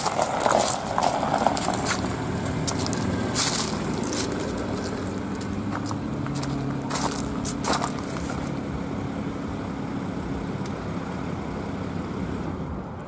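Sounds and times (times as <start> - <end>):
tyres crunching on gravel: 0.0 - 8.9
car engine rumbling: 0.0 - 13.0.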